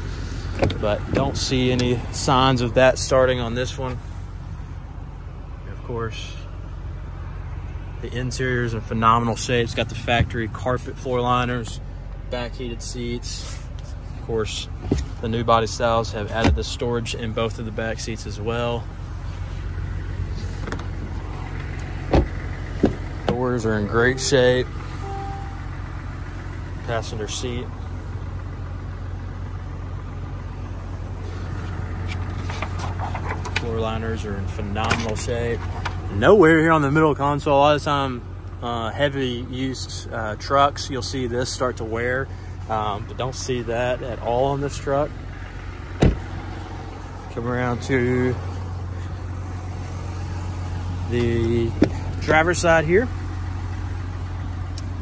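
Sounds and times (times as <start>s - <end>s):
diesel engine idling: 0.0s - 55.0s.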